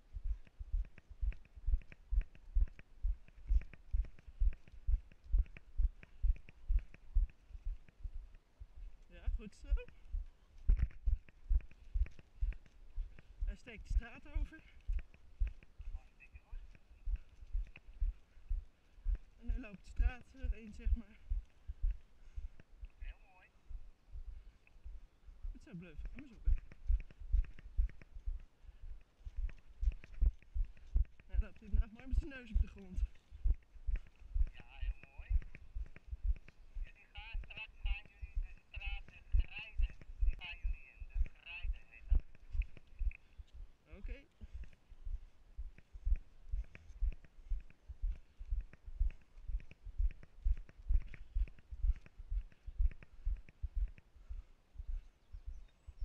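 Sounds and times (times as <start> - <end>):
footsteps on brick paving: 0.0 - 22.5, 26.0 - 43.7.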